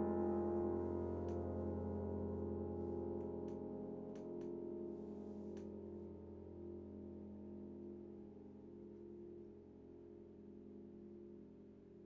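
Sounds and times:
faint piano chord ringing: 0.0s - 12.0s.

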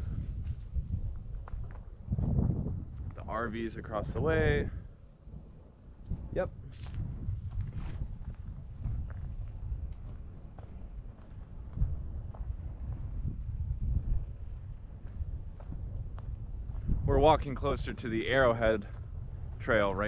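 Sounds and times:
wind rumbling on microphone: 0.0s - 20.0s
footsteps on dirt and grass: 0.2s - 3.2s, 6.0s - 17.0s.

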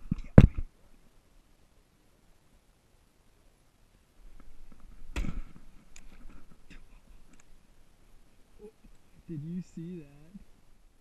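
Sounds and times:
bowstring release thump: 5.1s - 5.5s
light clicks: 5.9s - 7.5s.

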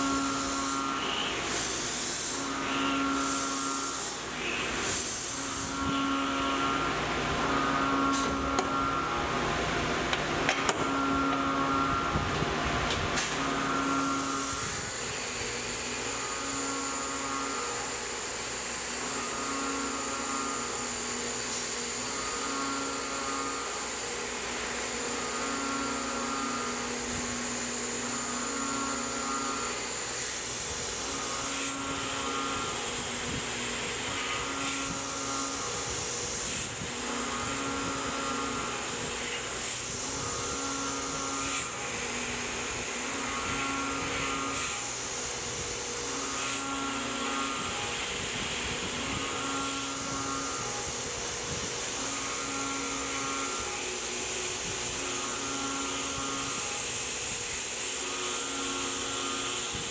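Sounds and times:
mill spindle cutting metal: 0.0s - 59.9s.

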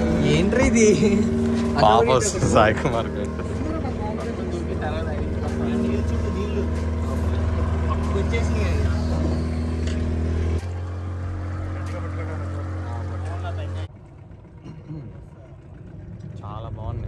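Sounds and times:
motorboat engine humming: 0.0s - 17.0s.

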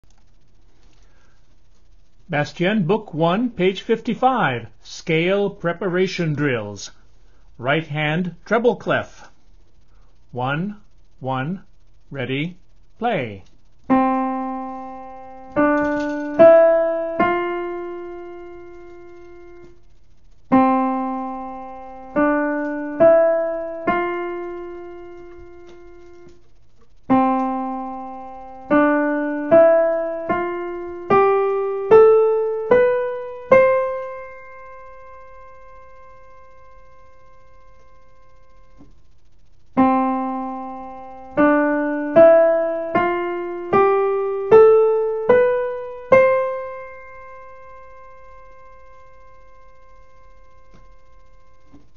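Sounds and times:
piano scale: 13.9s - 19.8s, 20.5s - 26.4s, 27.1s - 38.8s, 39.8s - 51.8s.

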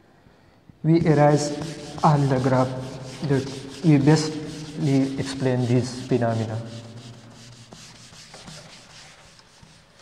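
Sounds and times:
eraser rubbing on whiteboard: 1.0s - 10.0s.

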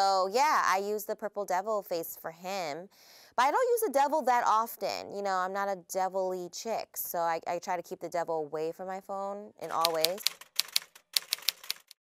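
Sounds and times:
typewriter keys clacking: 9.6s - 12.0s.

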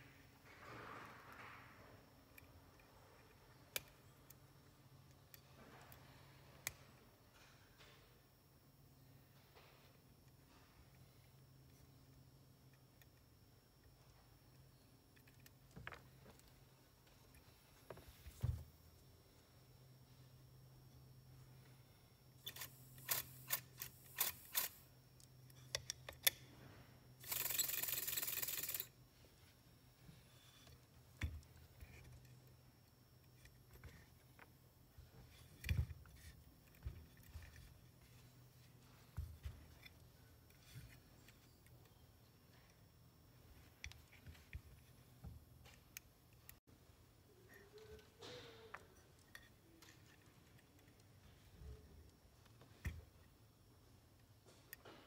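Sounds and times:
small metal clicks and knocks: 22.4s - 26.5s.

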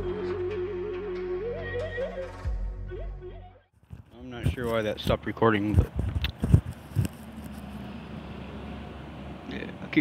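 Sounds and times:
dull bumps on a microphone: 3.9s - 7.2s.

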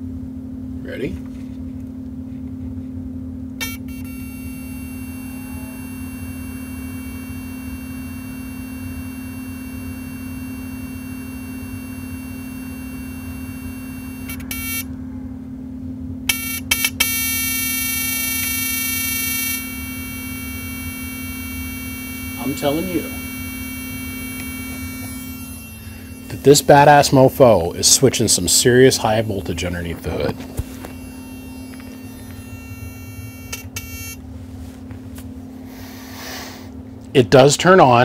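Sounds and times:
amplifier low hum: 0.0s - 38.0s
high-pitched electronic whine: 3.6s - 34.7s.

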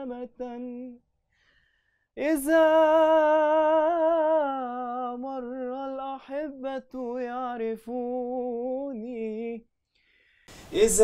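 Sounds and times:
man singing with vibrato: 0.0s - 1.0s, 2.2s - 9.7s, 10.6s - 11.0s.

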